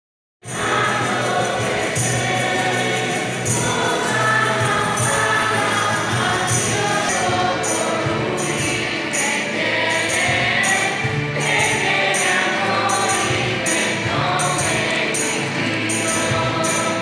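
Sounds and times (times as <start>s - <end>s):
choir singing a hymn: 0.4s - 17.0s
instrumental accompaniment: 0.4s - 17.0s.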